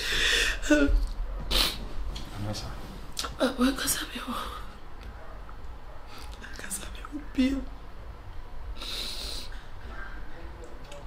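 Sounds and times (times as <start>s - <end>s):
hissing breath: 8.8s - 9.8s.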